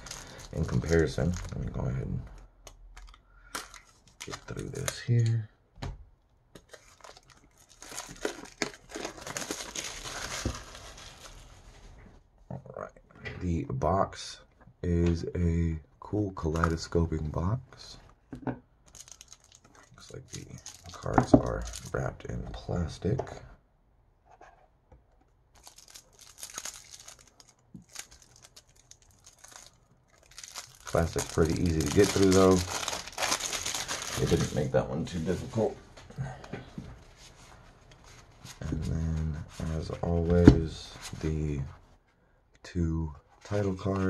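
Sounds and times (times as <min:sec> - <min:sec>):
plastic wrap crinkling and tearing: 0:00.0 - 0:02.0, 0:06.6 - 0:11.7, 0:18.9 - 0:22.0, 0:25.5 - 0:34.8.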